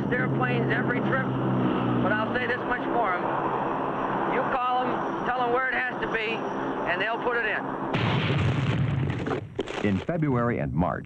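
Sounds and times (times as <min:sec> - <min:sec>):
man speaking: 0:09.8 - 0:11.0.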